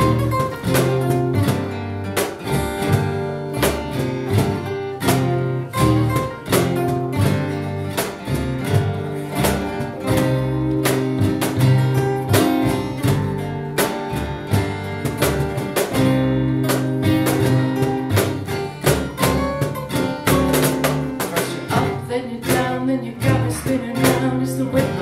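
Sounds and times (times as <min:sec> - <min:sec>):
cajon beat: 0:00.0 - 0:25.0
strummed acoustic guitars: 0:00.0 - 0:25.0
upright bass notes: 0:00.0 - 0:25.0.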